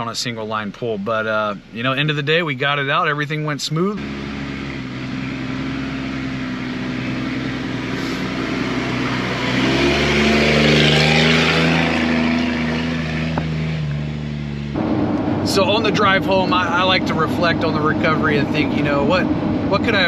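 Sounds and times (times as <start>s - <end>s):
car engine drone: 0.0s - 20.0s.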